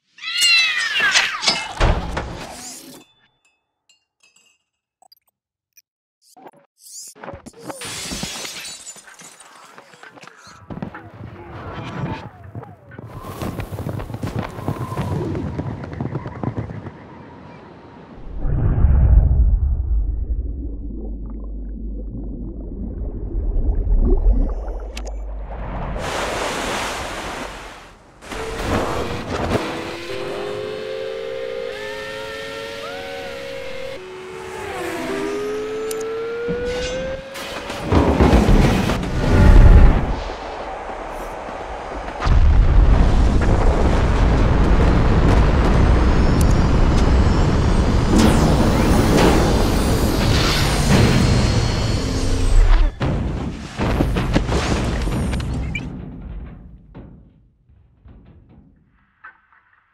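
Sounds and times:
glass shattering: 7.8 - 9.5
low rumble: 18.2 - 26.0
race car engine accelerating: 28.3 - 38.2.

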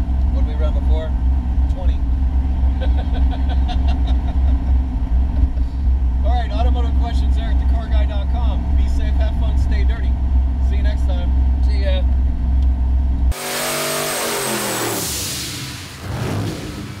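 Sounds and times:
car engine and road drone: 0.0 - 17.0
people talking: 0.3 - 1.1, 6.2 - 12.1
people laughing: 2.7 - 4.8
hissing with falling tones: 13.3 - 16.7.

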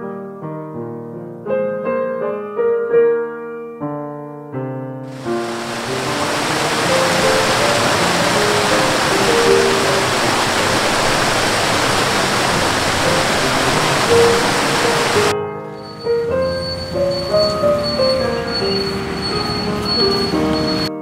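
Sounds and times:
soft piano music: 0.0 - 21.0
waterfall rushing: 5.1 - 15.3.

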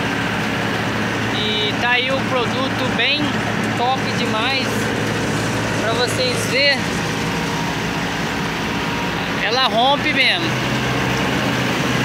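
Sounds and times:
harvester engine droning: 0.0 - 12.0
machinery noise: 0.0 - 12.0.

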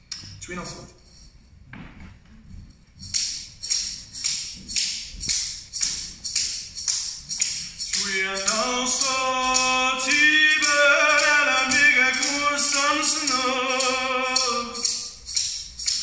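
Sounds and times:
handheld rattle shaken in rhythm: 0.0 - 1.7, 2.4 - 16.0.

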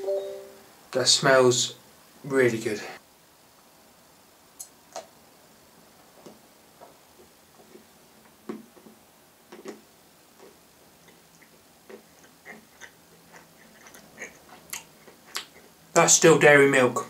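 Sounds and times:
faint chewing: 6.2 - 15.8
mouth clicks: 11.1 - 15.7.

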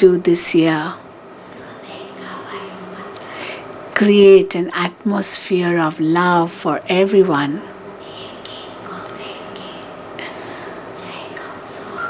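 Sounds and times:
steady background hiss: 0.0 - 12.0
soft hissing sounds: 0.8 - 3.9, 7.4 - 12.0
faint whispery voice: 8.0 - 12.0.

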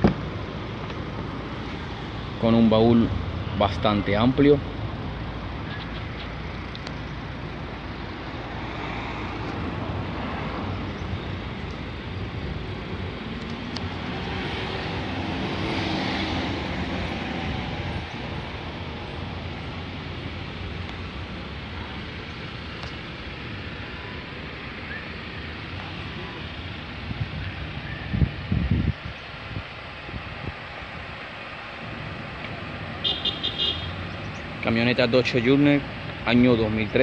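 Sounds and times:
road traffic rumble: 0.0 - 37.0
vehicle passing: 7.3 - 24.9.

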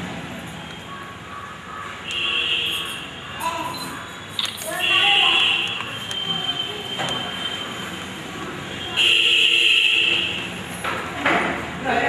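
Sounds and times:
crowd chatter: 2.8 - 9.5.

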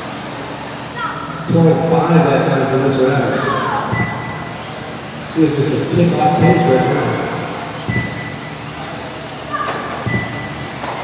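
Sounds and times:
electric toy car motor whine: 0.0 - 11.0.

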